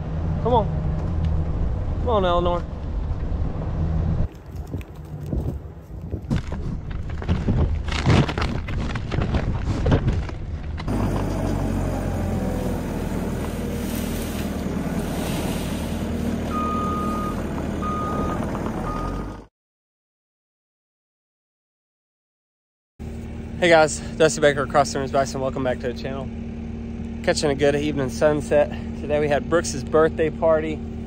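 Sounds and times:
skid steer engine running: 10.2s - 19.4s, 23.0s - 31.0s
back-up alarm beeping: 16.5s - 19.4s.

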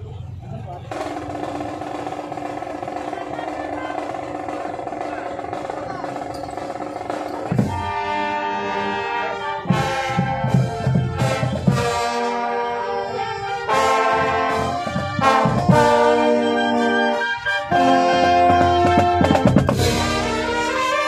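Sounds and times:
marching brass band playing: 0.9s - 21.0s.

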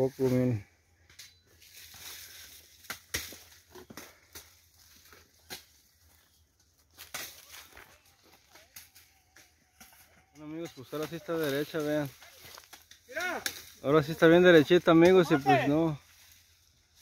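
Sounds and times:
sugarcane stalks cracking: 1.0s - 15.3s.

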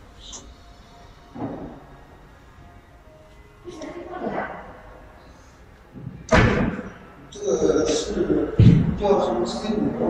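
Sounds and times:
loud slam: 6.3s - 6.9s.

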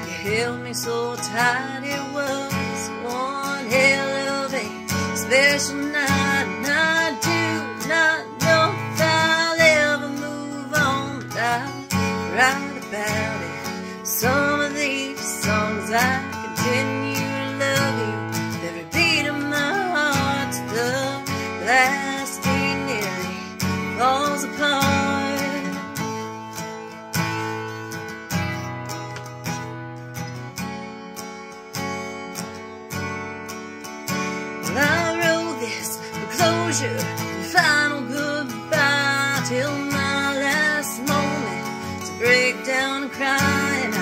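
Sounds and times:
acoustic guitar strumming: 0.0s - 44.0s.

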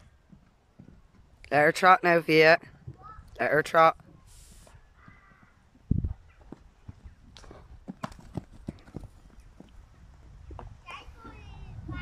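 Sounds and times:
hooves trotting on sand: 0.0s - 1.5s, 4.0s - 11.6s
child's voice: 2.9s - 3.3s, 5.0s - 5.6s, 10.8s - 12.0s.

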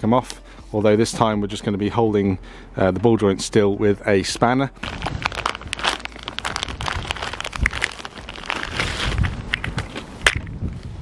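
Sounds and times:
plastic bag crinkling: 4.3s - 10.2s.

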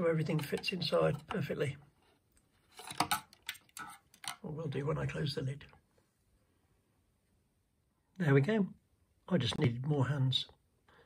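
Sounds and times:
plastic parts clicking and rustling: 2.7s - 4.4s.

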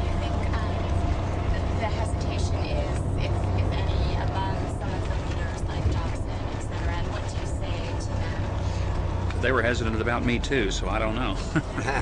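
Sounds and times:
moving bus rumble: 0.0s - 12.0s.

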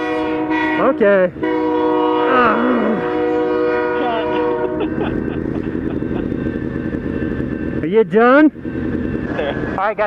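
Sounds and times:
train horn: 0.0s - 5.4s
train rumbling and clattering past: 0.0s - 10.0s.

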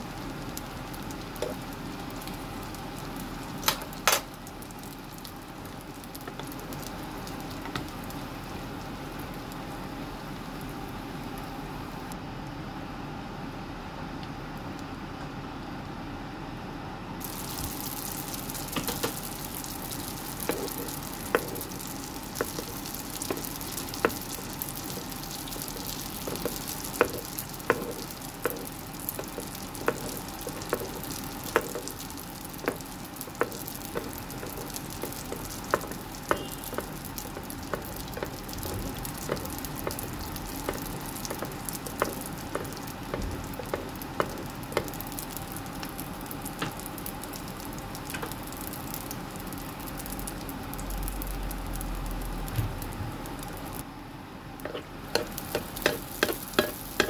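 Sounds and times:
dough deep-frying in hot oil: 0.0s - 57.0s.

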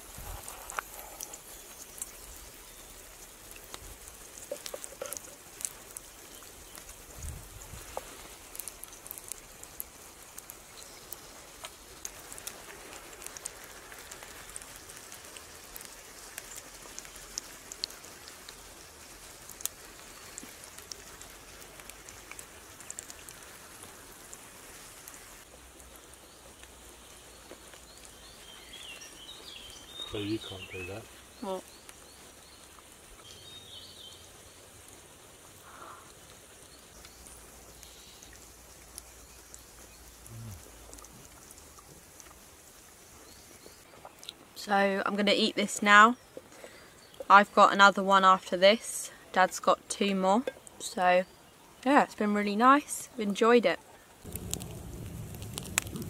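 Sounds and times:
food sizzling in a frying pan: 0.0s - 43.9s, 54.2s - 56.0s
oil popping and crackling: 0.0s - 47.6s, 48.4s - 51.0s, 54.2s - 56.0s.

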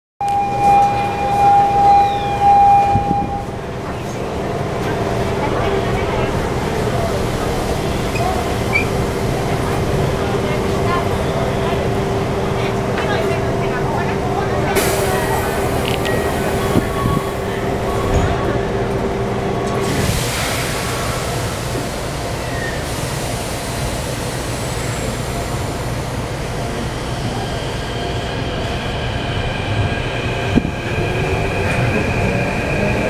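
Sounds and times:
high electronic warning tone: 0.2s - 3.6s
train car hum: 0.2s - 33.0s.

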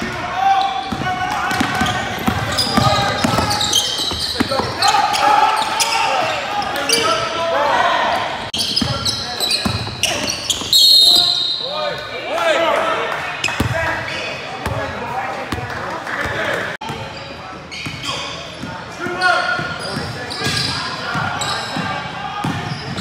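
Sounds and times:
sneakers squeaking: 0.0s - 12.1s, 13.4s - 23.0s
voices echoing: 0.0s - 23.0s
basketball bouncing on court: 0.9s - 4.8s.

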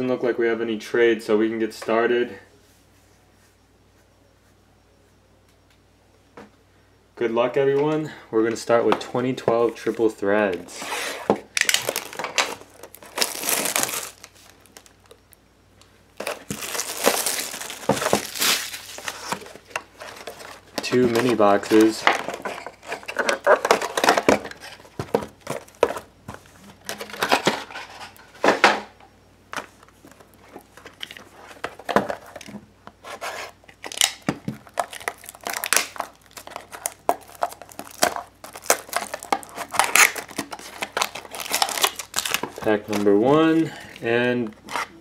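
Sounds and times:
wrapping crinkling and tearing: 10.7s - 15.3s, 16.2s - 24.9s, 33.2s - 44.9s.

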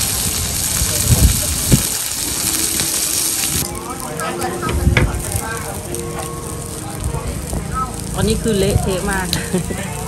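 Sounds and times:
meat sizzling on a grill pan: 0.0s - 10.0s.

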